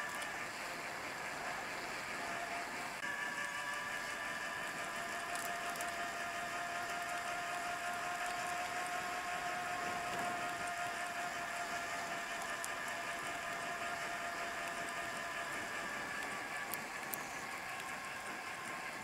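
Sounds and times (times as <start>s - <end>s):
bike tyres whirring on pavement: 0.0s - 19.0s.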